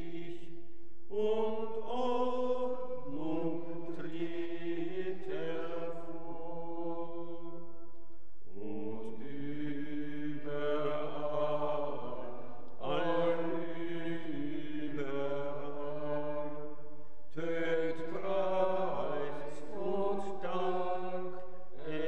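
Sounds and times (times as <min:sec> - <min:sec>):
congregation singing a hymn: 0:00.0 - 0:00.4, 0:01.1 - 0:07.7, 0:08.5 - 0:22.0.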